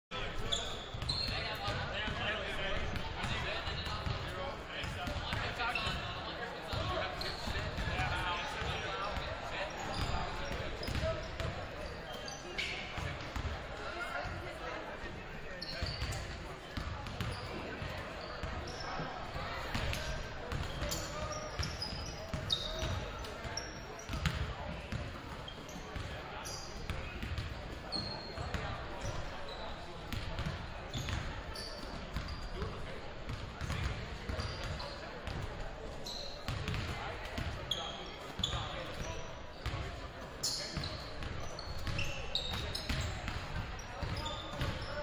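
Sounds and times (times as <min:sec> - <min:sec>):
crowd chatter echoing: 0:00.1 - 0:45.0
basketballs bouncing on hardwood floor: 0:27.2 - 0:27.5.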